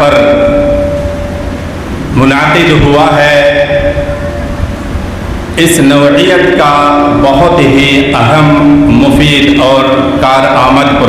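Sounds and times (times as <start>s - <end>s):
microphone feedback tone: 0.0s - 5.6s
sound system hum: 0.0s - 11.0s.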